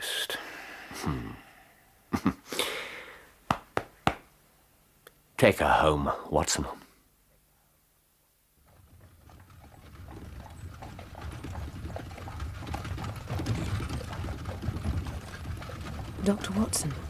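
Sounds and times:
horse hoofbeats: 8.6 - 17.0
iron-rimmed wheels rumbling: 8.6 - 17.0.

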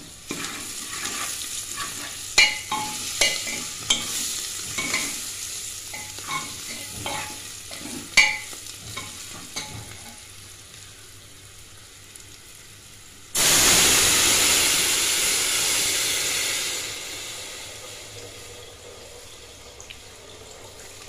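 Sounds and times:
vegetables sizzling in hot oil: 0.0 - 21.0
ladle scraping and knocking pot: 6.0 - 10.2.

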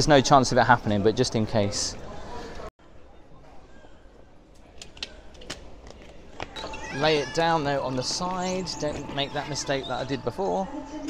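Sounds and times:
terminal hall hum: 2.0 - 11.0.

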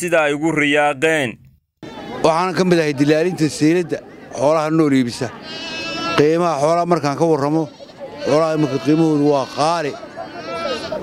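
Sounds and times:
livestock bleating: 5.4 - 11.0.

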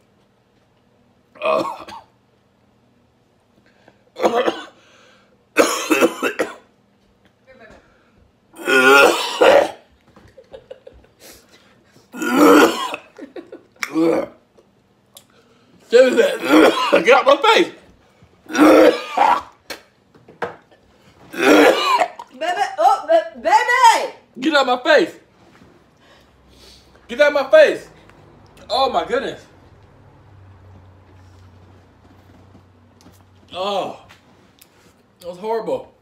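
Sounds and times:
man coughing hard: 1.4 - 2.2, 4.2 - 4.8, 5.6 - 6.7, 8.6 - 9.9, 12.1 - 13.2, 13.8 - 14.4, 16.0 - 17.3, 18.5 - 19.6, 21.3 - 22.3.

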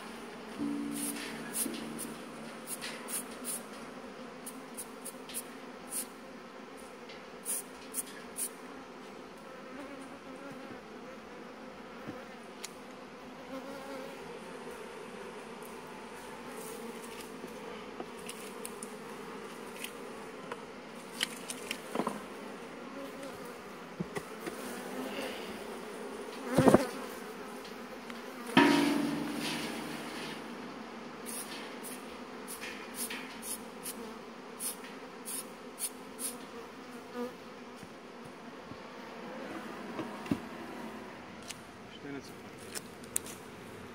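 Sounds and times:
bee passing close: 0.0 - 6.5
honeybees buzzing: 0.0 - 42.2.

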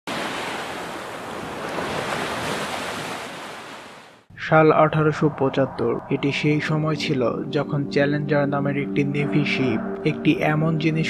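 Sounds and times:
waves breaking on beach: 0.1 - 4.3.

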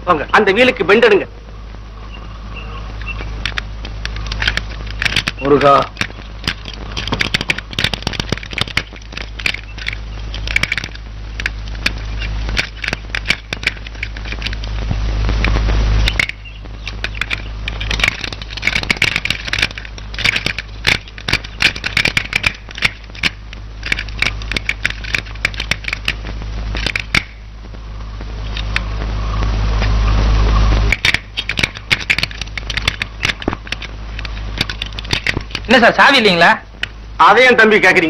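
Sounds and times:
old film crackle and clicks: 0.0 - 38.0
steady low hum: 0.0 - 38.0.

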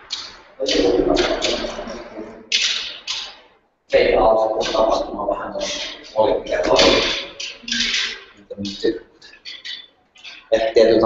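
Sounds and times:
loud vocal sound: 0.0 - 11.0
soft hissy voice sounds: 3.9 - 11.0.

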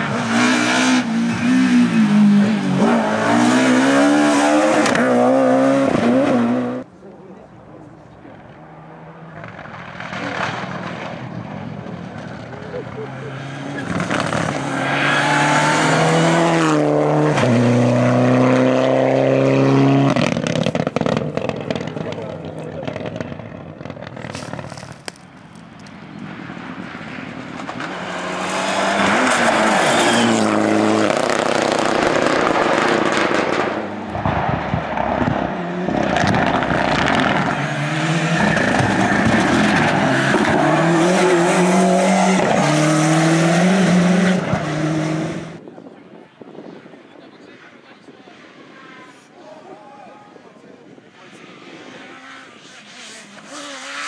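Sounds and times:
rally cars revving past: 0.0 - 6.9, 8.4 - 24.3, 26.0 - 45.6, 51.1 - 54.0.

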